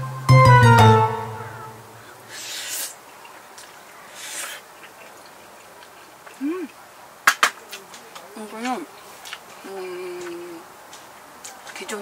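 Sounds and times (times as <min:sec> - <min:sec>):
person humming while chewing: 0:06.4 - 0:06.8.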